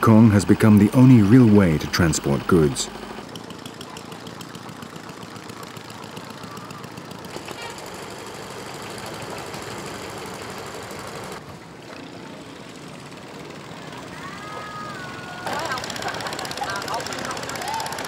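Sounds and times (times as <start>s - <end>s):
small boat engines chugging: 0.0s - 18.0s.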